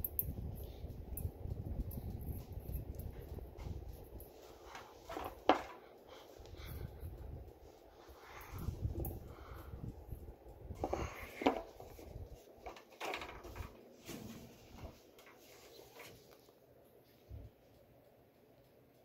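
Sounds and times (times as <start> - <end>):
ceiling fan wind buffeting: 0.0 - 19.0.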